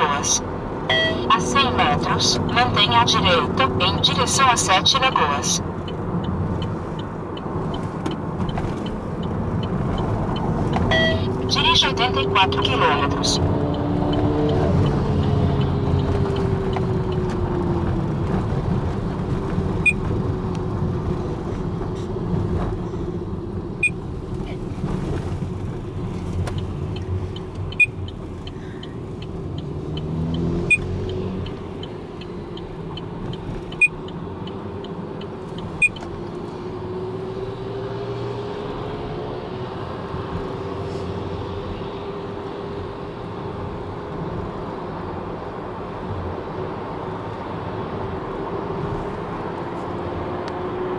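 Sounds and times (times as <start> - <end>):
car engine: 0.0 - 50.9
tyre road noise: 0.0 - 50.9.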